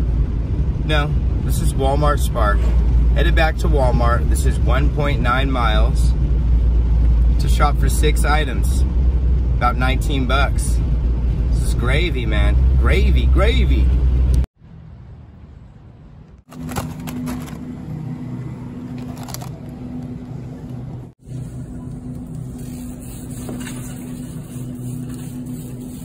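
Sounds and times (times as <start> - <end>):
freezer hum: 16.4 - 26.0.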